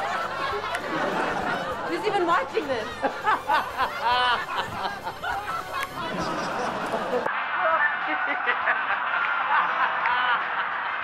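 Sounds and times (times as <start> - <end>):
man laughing loudly: 3.0 - 11.0.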